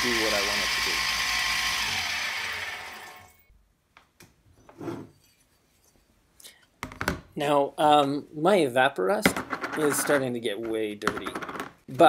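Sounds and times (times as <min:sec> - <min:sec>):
belt grinder spinning down: 0:00.0 - 0:03.5.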